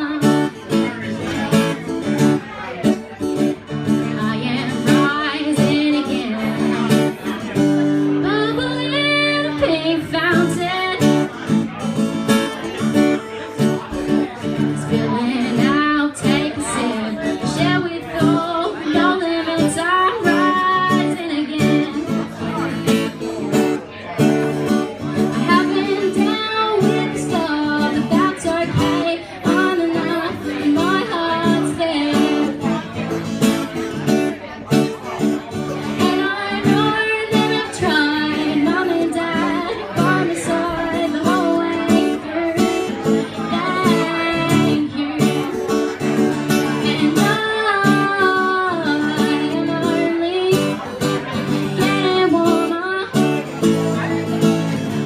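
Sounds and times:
woman singing: 0:00.0 - 0:01.0, 0:04.0 - 0:07.3, 0:08.0 - 0:11.4, 0:14.6 - 0:22.4, 0:25.2 - 0:33.0, 0:35.9 - 0:45.6, 0:46.5 - 0:54.2
strummed acoustic guitar: 0:00.0 - 0:55.0.

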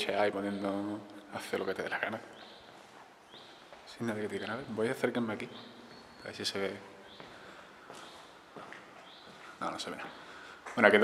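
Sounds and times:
footsteps on stone floor: 0:01.5 - 0:11.0.

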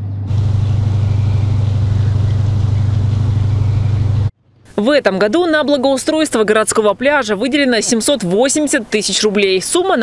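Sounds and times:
dredge engine droning: 0:00.0 - 0:04.3.

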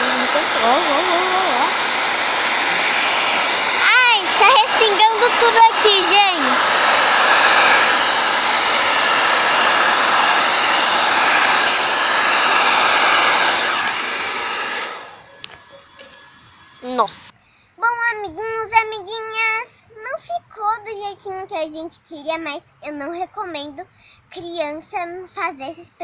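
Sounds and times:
hair dryer blowing: 0:00.0 - 0:17.3.

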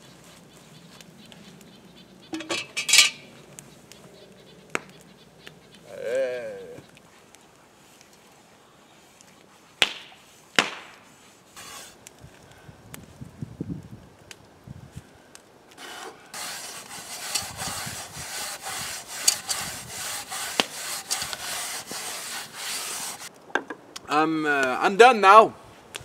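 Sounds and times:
hand scrubbing rust from pot: 0:02.3 - 0:03.3, 0:11.6 - 0:12.0, 0:15.8 - 0:23.3.

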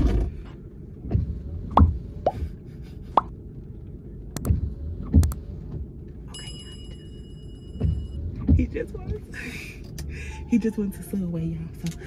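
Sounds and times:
low car cabin hum: 0:00.0 - 0:12.0.

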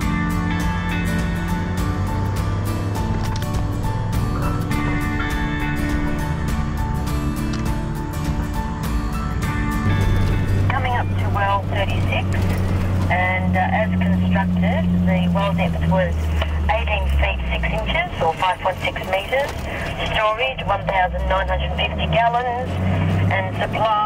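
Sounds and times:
background music: 0:00.0 - 0:24.0
engine drone inside cabin: 0:00.0 - 0:24.0
voices over radio speaker: 0:10.7 - 0:12.4, 0:13.1 - 0:24.0.

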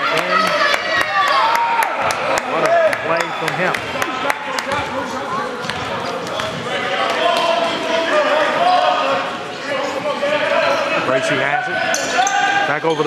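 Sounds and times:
crowd voices: 0:00.0 - 0:13.0.

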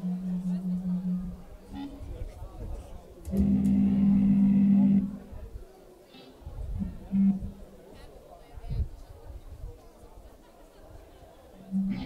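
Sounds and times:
held low note through speakers: 0:03.3 - 0:05.5, 0:06.5 - 0:07.7, 0:11.6 - 0:12.0.

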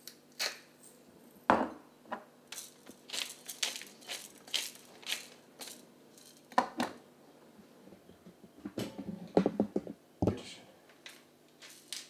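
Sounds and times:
spice mill grinding: 0:02.5 - 0:06.5
hard object knocking on counter: 0:08.8 - 0:10.4.

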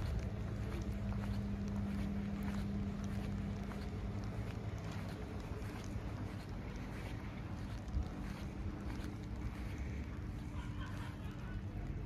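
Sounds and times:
wind buffeting microphone: 0:00.0 - 0:10.6.

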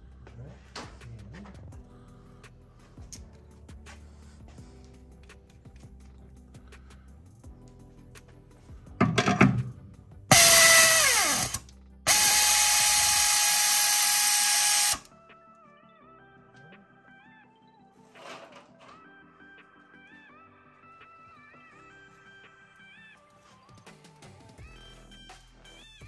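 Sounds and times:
faint background music: 0:00.0 - 0:26.0
power drill boring into steel: 0:10.3 - 0:15.1.

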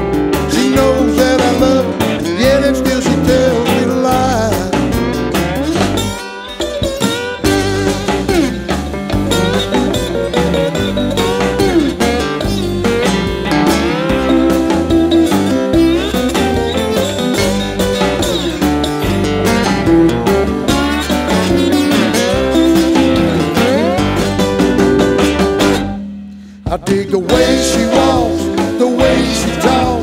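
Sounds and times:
lead guitar bending notes: 0:00.0 - 0:26.6, 0:27.3 - 0:30.0
bass and drums: 0:00.0 - 0:30.0.

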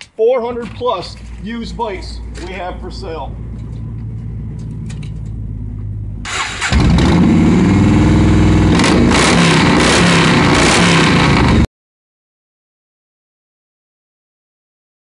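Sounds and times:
motorcycle engine starting and running: 0:00.5 - 0:11.7.

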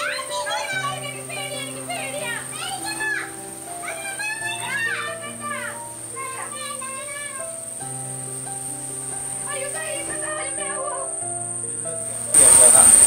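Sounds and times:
children whooping: 0:00.0 - 0:07.5, 0:09.4 - 0:11.2.

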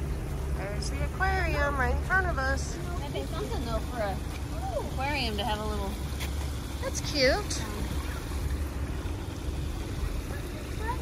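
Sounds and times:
water rushing into stream: 0:00.0 - 0:11.0.

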